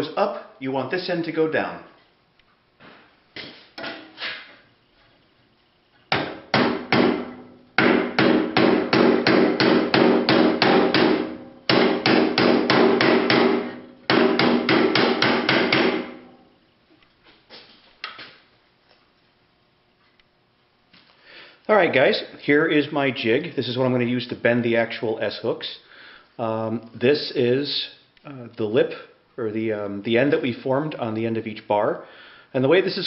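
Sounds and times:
hammer striking hot steel bar: 0:06.1 - 0:16.3.

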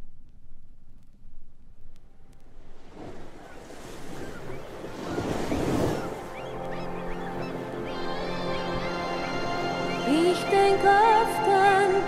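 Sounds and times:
sea surf surging: 0:02.6 - 0:12.0
bird cries: 0:03.4 - 0:10.4
sustained music chords: 0:06.1 - 0:12.0.

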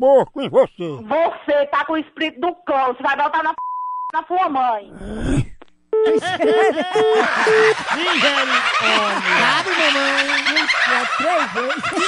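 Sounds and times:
telephone busy signal beeps: 0:03.6 - 0:04.2, 0:06.0 - 0:07.8.

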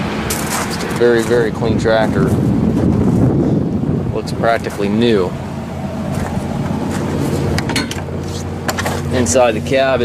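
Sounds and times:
diesel engine idling: 0:00.0 - 0:10.0
sharp clicks and knocks: 0:07.5 - 0:09.1.

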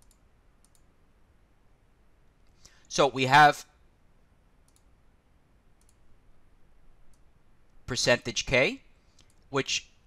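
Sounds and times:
faint sharp clicks: 0:00.0 - 0:00.9, 0:04.6 - 0:04.9, 0:05.8 - 0:06.0, 0:09.1 - 0:09.5.

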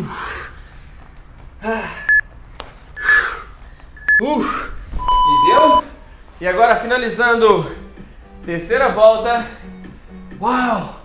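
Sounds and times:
short high timer beeps: 0:05.0 - 0:05.8.

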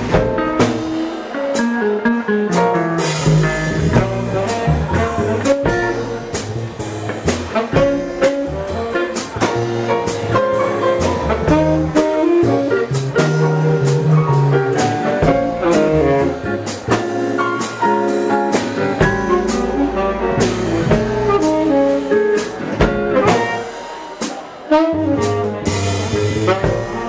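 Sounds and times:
drum kit with cymbals: 0:00.0 - 0:27.0
tenor saxophone melody: 0:03.9 - 0:06.4, 0:07.5 - 0:09.3, 0:11.0 - 0:14.0, 0:15.3 - 0:16.8, 0:19.1 - 0:22.5, 0:23.1 - 0:23.7, 0:24.7 - 0:25.6, 0:26.4 - 0:27.0.

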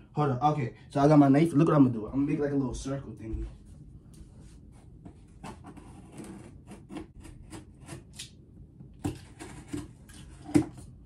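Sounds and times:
knife scraping cardboard: 0:05.1 - 0:08.3, 0:09.0 - 0:10.8.

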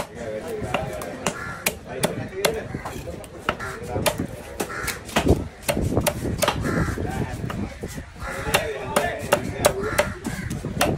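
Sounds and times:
cleaver chopping on wooden block: 0:00.0 - 0:06.7, 0:08.3 - 0:10.9
crows cawing: 0:01.2 - 0:10.9.

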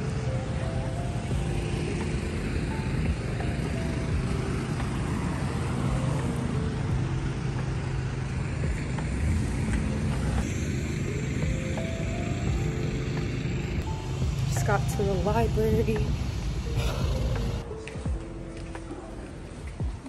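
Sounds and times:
faint background music: 0:00.0 - 0:20.0
road noise: 0:00.0 - 0:20.0
vehicle engine hum: 0:00.0 - 0:20.0.

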